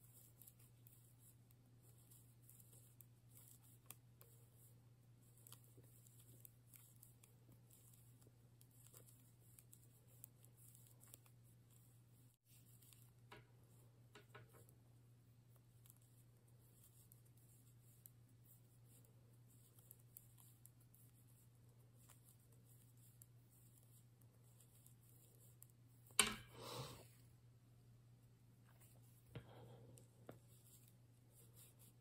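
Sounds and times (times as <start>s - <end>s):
knitting needles clicking: 5.4s - 11.4s.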